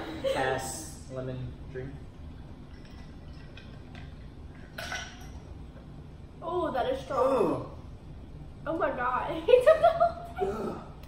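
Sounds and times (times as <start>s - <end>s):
glasses and ice clinking: 2.7s - 5.5s
loud glass clink: 4.8s - 5.4s.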